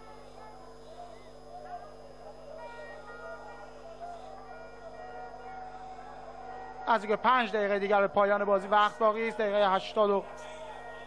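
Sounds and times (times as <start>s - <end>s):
faint broadcast hum: 0.0s - 11.0s
stadium crowd shouting and chanting: 0.0s - 11.0s.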